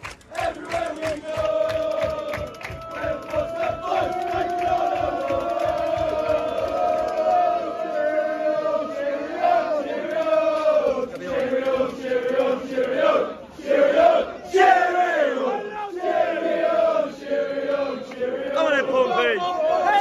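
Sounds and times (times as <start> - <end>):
football crowd chanting and singing: 0.0 - 20.0.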